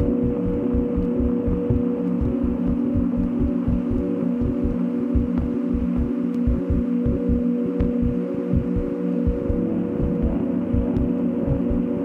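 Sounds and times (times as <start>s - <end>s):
deep bass pulses: 0.0s - 11.9s
low drone chord: 0.0s - 12.0s.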